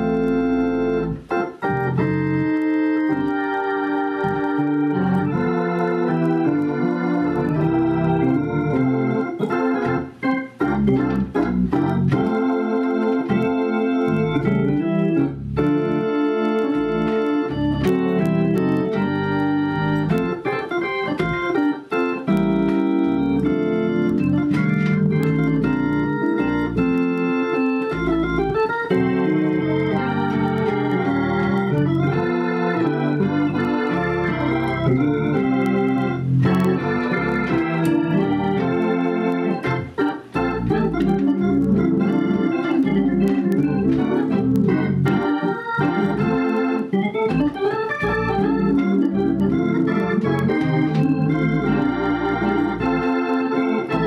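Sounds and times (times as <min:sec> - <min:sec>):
organ playing chords: 0:00.0 - 0:54.0.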